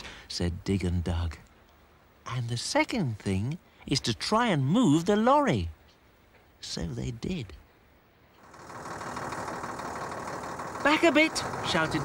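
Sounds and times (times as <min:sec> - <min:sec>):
cartoon lorry engine running: 0:08.4 - 0:12.0.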